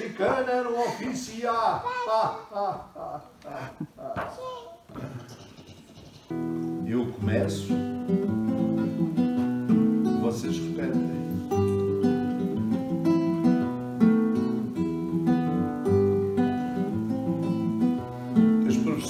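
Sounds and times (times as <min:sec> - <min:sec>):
acoustic guitar strumming chords: 0:06.3 - 0:19.0.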